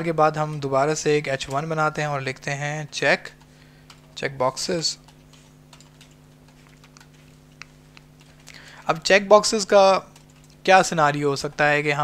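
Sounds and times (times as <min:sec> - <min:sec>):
steady low hum: 0:00.0 - 0:12.0
typing on computer keyboard: 0:04.9 - 0:12.0.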